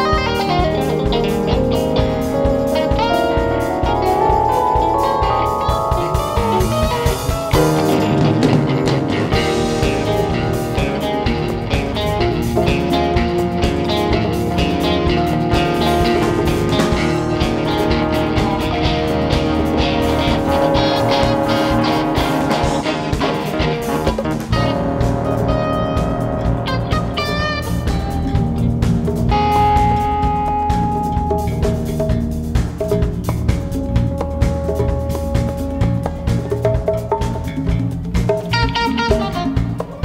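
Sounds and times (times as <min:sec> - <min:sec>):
live rock band playing: 0:00.0 - 0:40.0.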